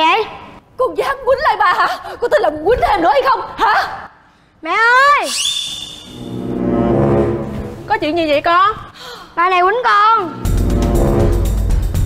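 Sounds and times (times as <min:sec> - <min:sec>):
low brass horn note: 0:06.2 - 0:07.9, 0:10.4 - 0:11.8.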